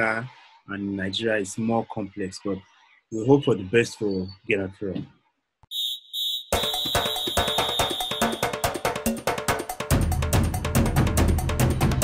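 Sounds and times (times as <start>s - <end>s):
high electronic double beep: 5.7s - 9.0s
music with fast even beat: 6.5s - 12.0s.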